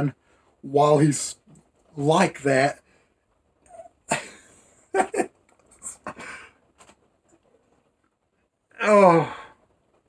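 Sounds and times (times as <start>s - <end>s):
man laughing: 4.1s - 6.5s
man's strained vocal noise: 8.7s - 9.7s.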